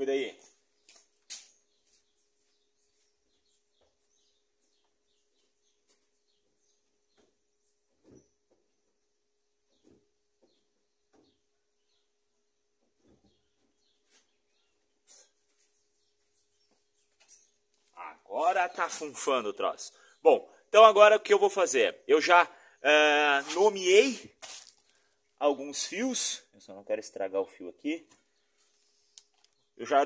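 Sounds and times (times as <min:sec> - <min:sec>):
faint birds chirping: 0:00.0 - 0:30.0.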